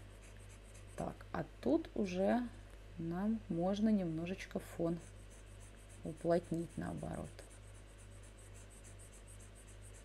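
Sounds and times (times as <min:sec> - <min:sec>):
stylus scratching on tablet: 0:00.0 - 0:01.2, 0:04.0 - 0:10.0
low electrical hum: 0:00.0 - 0:10.0.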